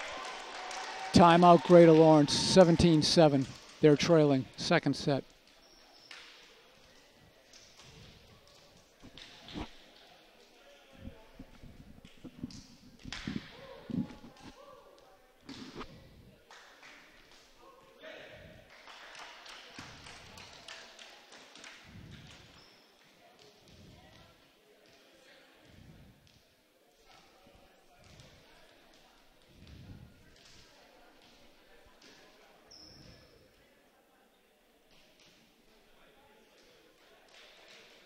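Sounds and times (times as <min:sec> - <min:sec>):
echoing chatter in a gymnasium: 0:00.0 - 0:38.0.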